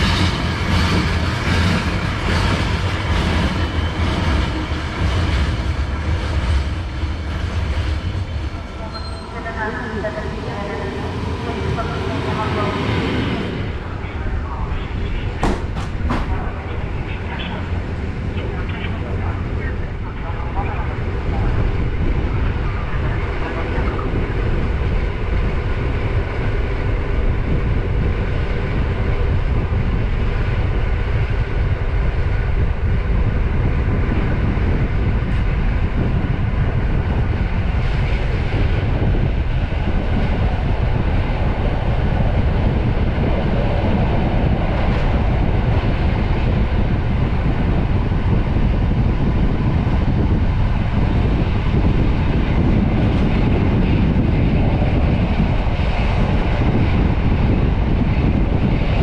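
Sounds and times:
train rumbling on rails: 0:00.0 - 0:59.0.

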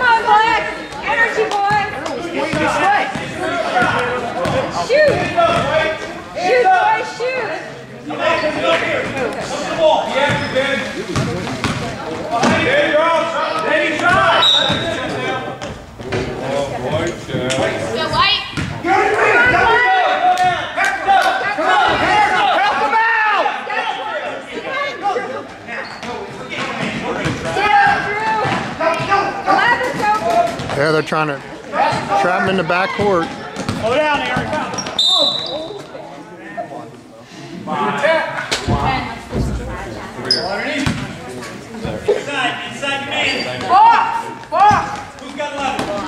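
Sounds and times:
crowd voices and shouting: 0:00.0 - 0:46.0
basketball bouncing on gym floor: 0:18.5 - 0:18.8, 0:33.5 - 0:34.9.

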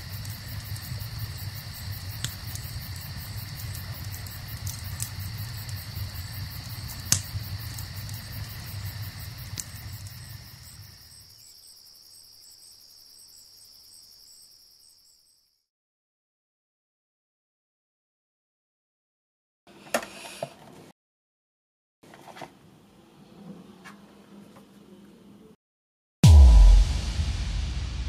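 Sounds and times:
crackling fire with pops: 0:00.0 - 0:11.2
crickets chirping: 0:00.0 - 0:15.6.

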